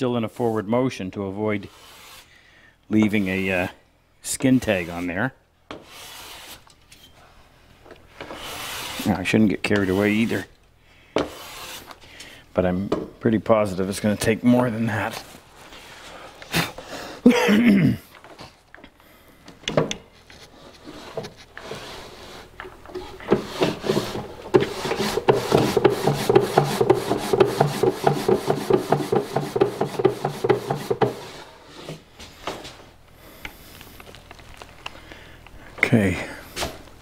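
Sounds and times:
wooden drawer squeaking: 20.9s - 31.4s
knock: 24.5s - 31.2s.

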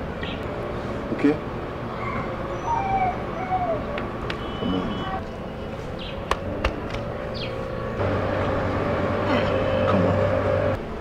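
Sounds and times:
distant traffic hum: 0.0s - 11.0s.

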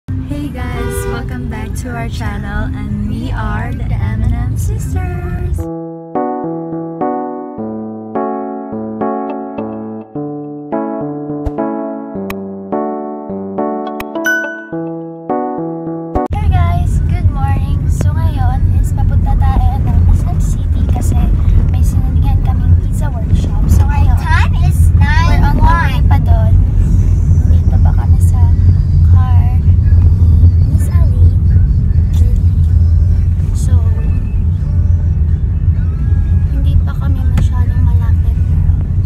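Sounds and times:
car cabin low rumble: 16.3s - 39.0s.

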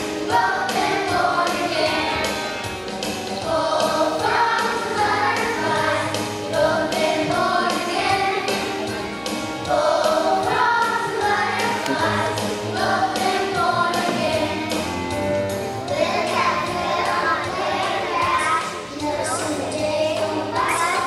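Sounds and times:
children singing: 0.0s - 2.6s, 3.3s - 14.8s, 15.8s - 21.0s
music with steady beat: 0.0s - 20.6s.

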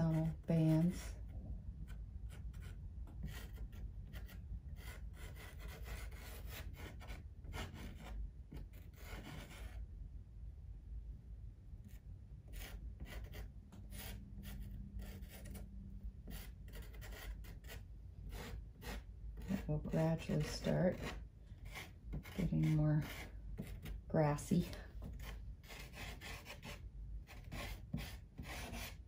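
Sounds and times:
pastel scratching on paper: 2.3s - 9.8s, 12.5s - 29.0s.

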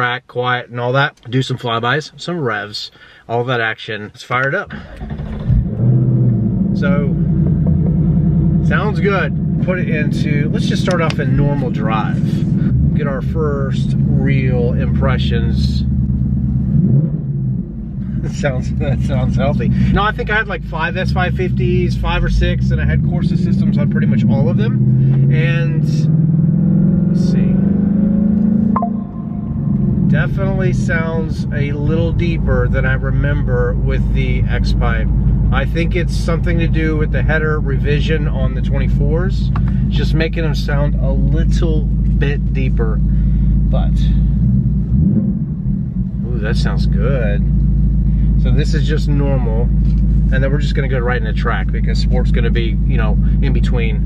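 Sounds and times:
car engine rumble from inside cabin: 4.3s - 54.0s.

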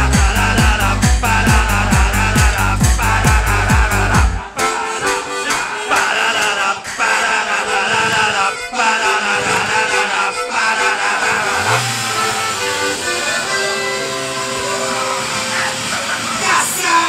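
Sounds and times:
low motor-like drone: 0.0s - 4.6s, 7.8s - 17.0s
brass and accordion polka music: 0.0s - 17.0s.

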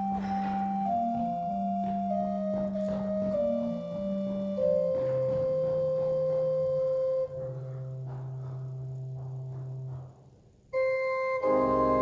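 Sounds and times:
organ playing held chords: 0.0s - 10.1s, 10.7s - 12.0s.

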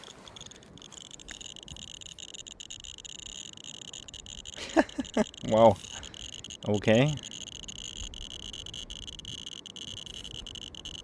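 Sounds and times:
radiation detector clicking buzz: 0.0s - 11.0s.

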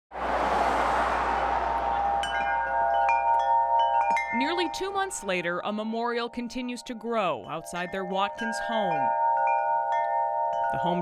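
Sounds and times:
tubular wind chime ringing: 1.6s - 11.0s.

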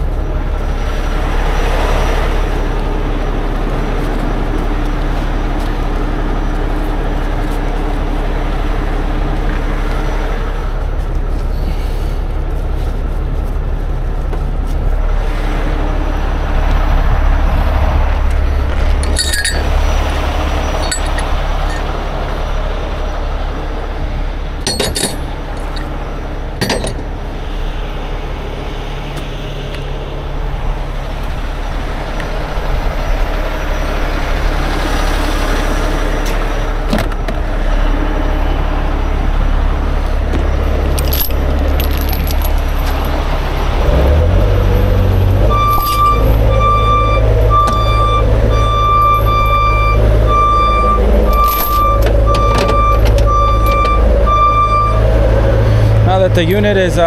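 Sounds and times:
heavy diesel engines running: 0.0s - 57.0s
sharp chain clinks: 19.0s - 19.8s, 20.6s - 21.9s, 24.7s - 25.9s, 45.6s - 46.2s
back-up alarm beeping: 45.5s - 55.1s.

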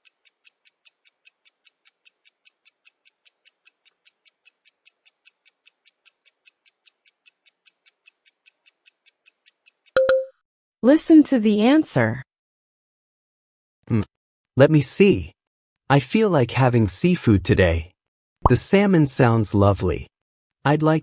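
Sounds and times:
timer ticking: 0.0s - 10.3s.

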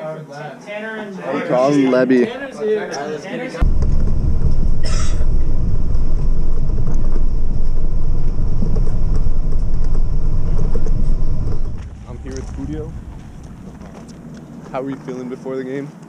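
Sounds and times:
wind buffeting microphone: 3.6s - 15.2s.

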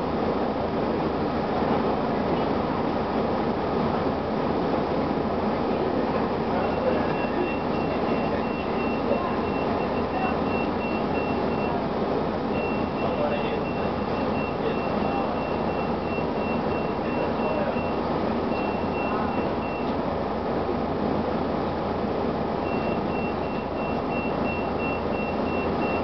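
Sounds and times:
bus diesel engine running: 0.0s - 26.0s
electronic warning beeper: 6.6s - 11.8s, 12.5s - 20.0s, 22.6s - 26.0s.

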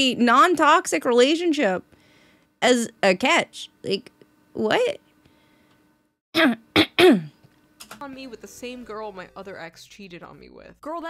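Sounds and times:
woman clearing her throat: 6.4s - 7.4s.

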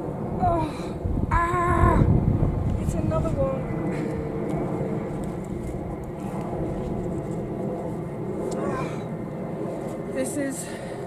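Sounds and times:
aircraft rumble: 0.0s - 11.0s
distant traffic: 0.0s - 11.0s.

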